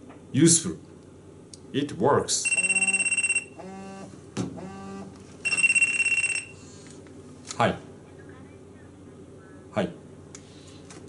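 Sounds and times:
mobile phone ringing: 2.4 - 3.9, 5.4 - 6.6.

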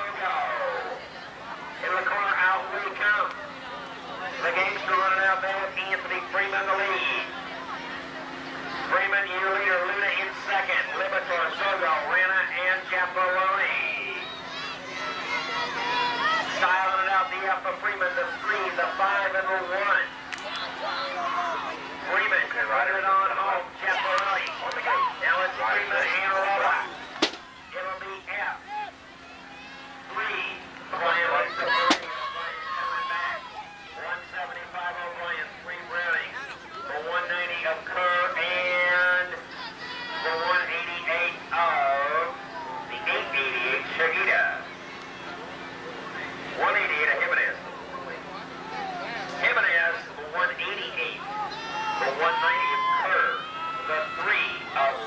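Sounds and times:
announcer over public address: 0.0 - 55.0
steady low hum: 0.0 - 55.0.

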